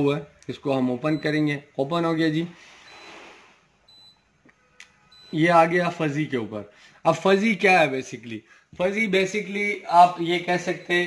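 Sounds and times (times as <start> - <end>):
short high beep: 2.8 - 3.3.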